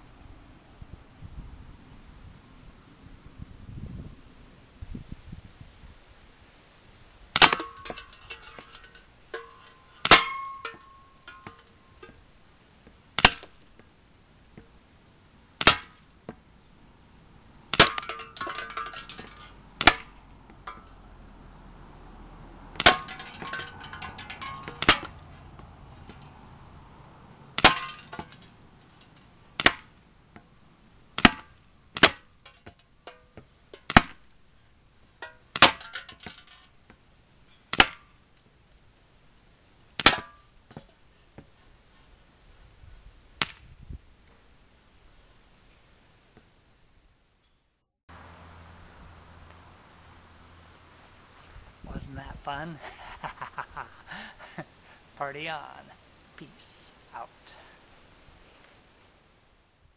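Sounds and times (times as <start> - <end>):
airsoft pistol shots: 7.4 - 7.7, 15.6 - 16.0
metallic clink and rattle of can: 7.5 - 12.1, 17.9 - 19.6, 22.8 - 25.2, 32.4 - 33.3, 35.2 - 36.8.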